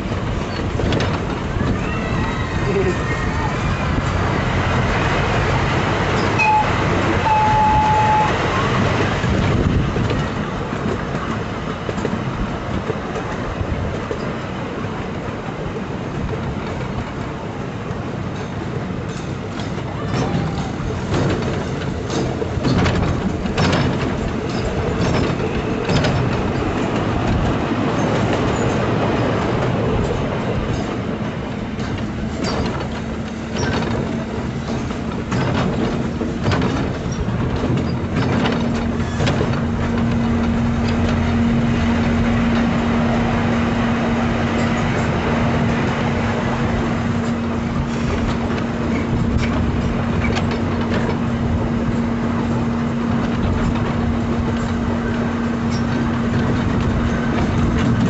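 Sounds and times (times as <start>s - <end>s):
small train rumbling on track: 0.0s - 58.0s
wheels clicking on rails: 0.0s - 58.0s.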